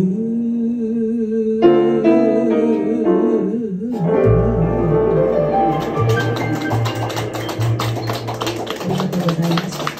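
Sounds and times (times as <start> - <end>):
jazz combo playing ballad: 1.6 - 9.6
double bass low notes: 3.9 - 6.2.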